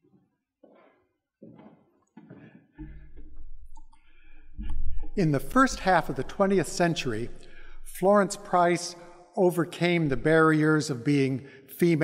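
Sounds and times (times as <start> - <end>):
low rumble: 4.4 - 8.5.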